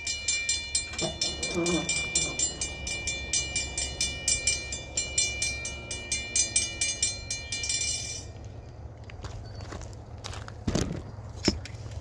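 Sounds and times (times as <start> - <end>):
crossing bell ringing rapidly: 0.0 - 8.7
freight train rumble: 0.0 - 12.0.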